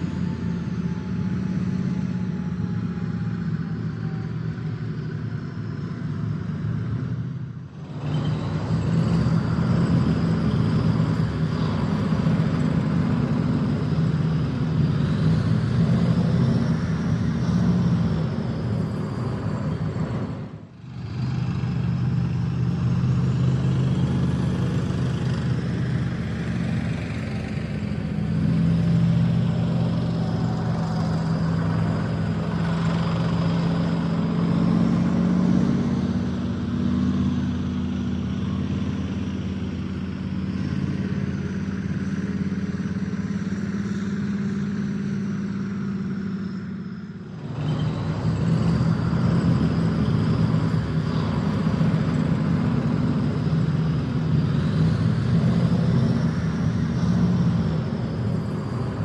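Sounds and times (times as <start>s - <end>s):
road noise: 0.0s - 59.0s
truck engine running: 0.0s - 59.0s.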